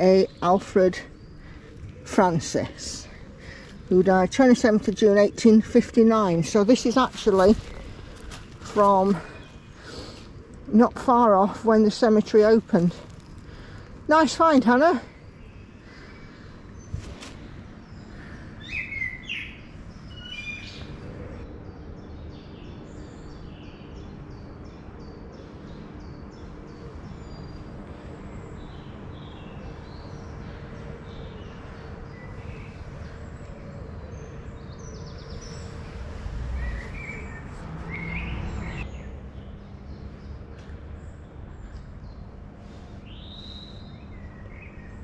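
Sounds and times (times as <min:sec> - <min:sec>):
songbirds chirping: 0:00.0 - 0:45.0.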